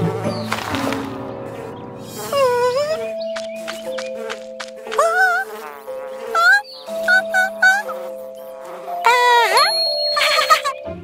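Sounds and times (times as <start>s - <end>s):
cartoon bee buzzing: 0.0s - 10.8s.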